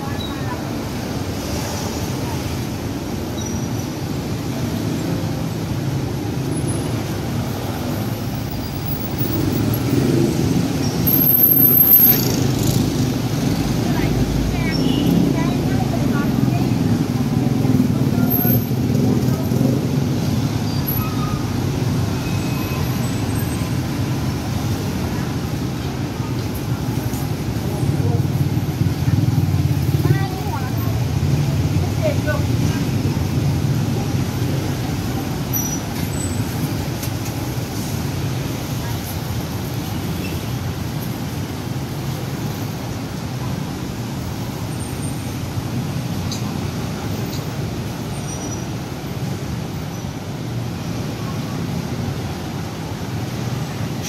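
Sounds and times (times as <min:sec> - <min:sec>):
people talking: 0:00.0 - 0:02.9, 0:09.4 - 0:20.3, 0:22.0 - 0:35.7, 0:38.4 - 0:40.2
city traffic: 0:00.0 - 0:54.0.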